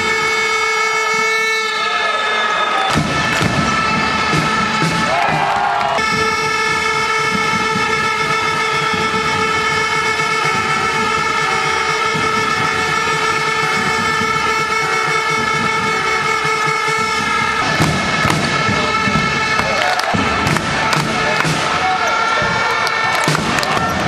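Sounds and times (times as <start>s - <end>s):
arena crowd noise: 0.0s - 24.0s
horn-like chord: 0.0s - 24.0s.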